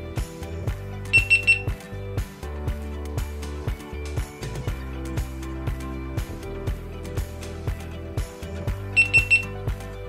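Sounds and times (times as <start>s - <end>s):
background music with steady beat: 0.0s - 10.0s
high camera beeps: 1.2s - 1.8s, 9.0s - 9.6s.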